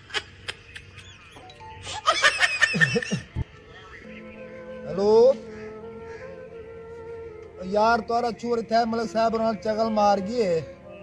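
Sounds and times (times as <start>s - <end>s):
canned laughter: 0.0s - 3.8s.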